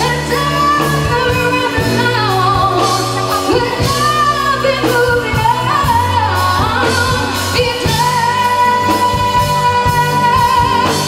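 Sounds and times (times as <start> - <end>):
drums: 0.0 - 11.0
keyboard: 0.0 - 11.0
woman singing into microphone: 0.0 - 11.0.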